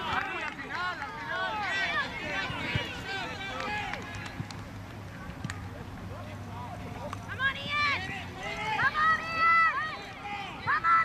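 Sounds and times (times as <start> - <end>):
faint shouting: 7.4 - 11.0.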